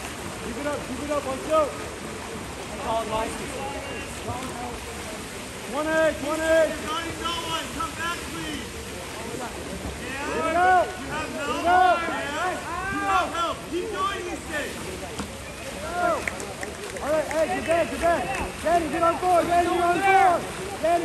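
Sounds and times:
water splashing: 0:00.0 - 0:21.0
spectators shouting and yelling: 0:10.0 - 0:21.0.

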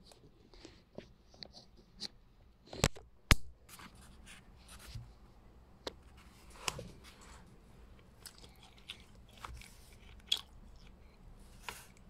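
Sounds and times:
book pages crackling: 0:08.1 - 0:12.0.

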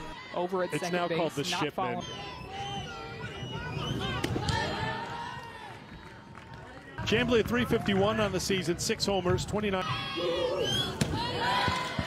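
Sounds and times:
low crowd murmur: 0:00.0 - 0:07.8.

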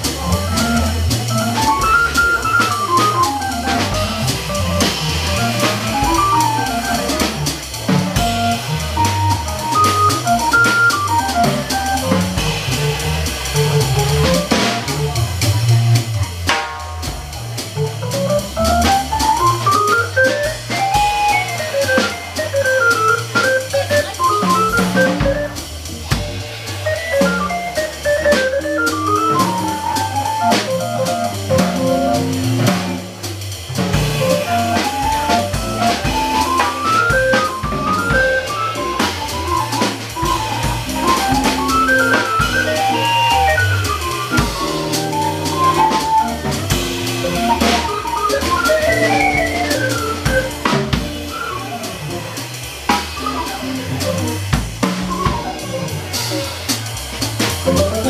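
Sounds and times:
electronic organ: 0:00.0 - 0:12.5, 0:18.0 - 0:25.6, 0:26.9 - 0:33.0, 0:34.0 - 0:52.3
low bass line: 0:00.0 - 0:16.4, 0:17.3 - 0:47.9
drum kit with cymbals: 0:00.0 - 0:58.0.

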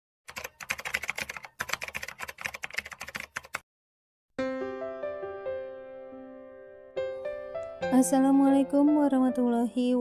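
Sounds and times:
keyboard typing clicks: 0:00.3 - 0:03.6.

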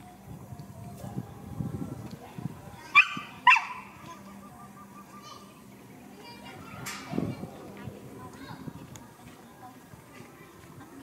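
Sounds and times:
dog yelping barks: 0:02.9 - 0:03.9.

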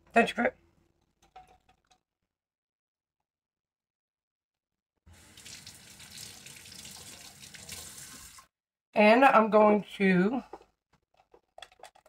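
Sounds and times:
tap water running into sink: 0:05.1 - 0:08.5.

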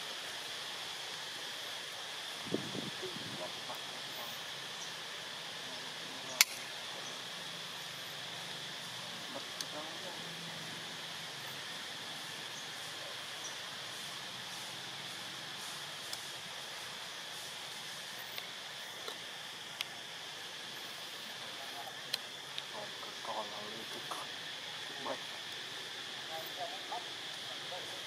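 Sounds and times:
high hiss: 0:00.0 - 0:28.0
sharp click: 0:06.4 - 0:06.6.

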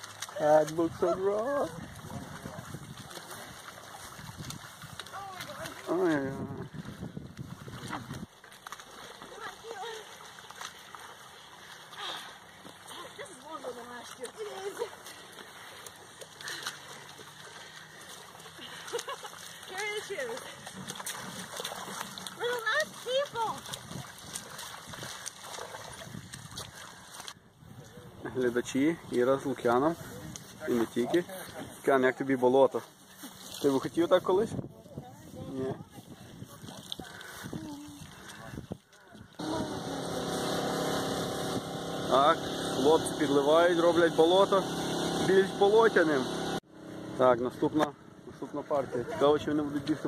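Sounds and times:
splashing in muddy water: 0:00.0 - 0:50.0
engine running with low hum: 0:39.4 - 0:48.4.

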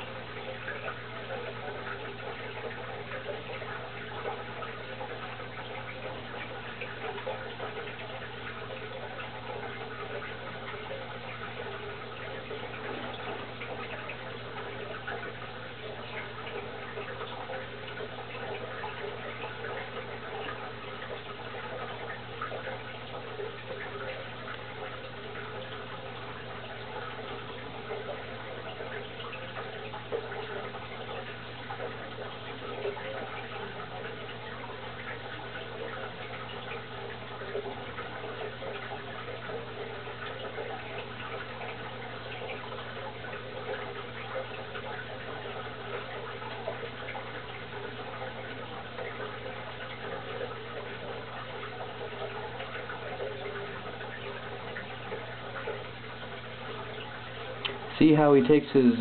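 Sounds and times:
aquarium water trickling: 0:00.0 - 0:59.0.

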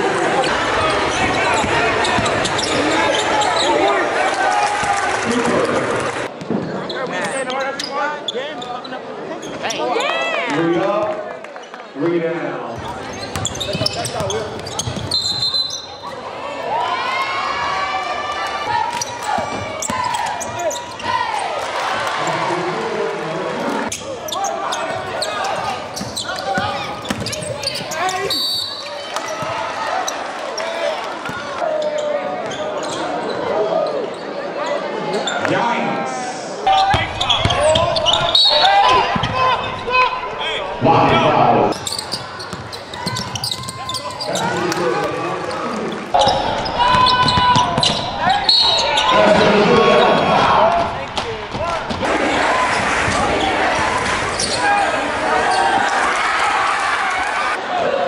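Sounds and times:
voices and shouts echoing: 0:00.0 - 0:58.0
basketball bouncing on court: 0:01.4 - 0:02.7, 0:12.7 - 0:15.8, 0:18.6 - 0:21.2, 0:23.9 - 0:29.7, 0:36.8 - 0:38.3, 0:41.7 - 0:45.2, 0:46.2 - 0:48.2.

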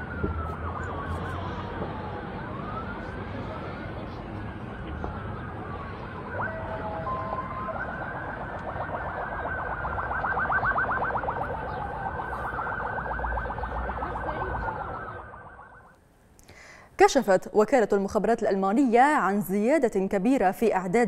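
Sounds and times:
fast yelping siren: 0:00.0 - 0:15.9
wailing sirens: 0:00.0 - 0:16.0.

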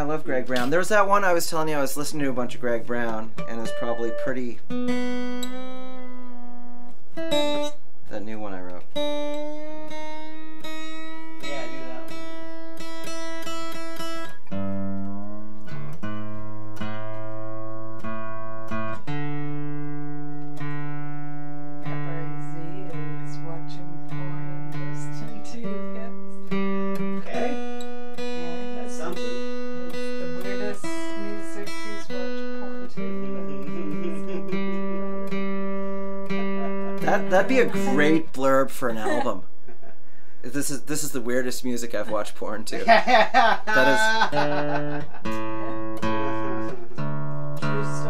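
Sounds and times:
acoustic guitar strings plucked: 0:00.0 - 0:39.9, 0:43.7 - 0:48.0.

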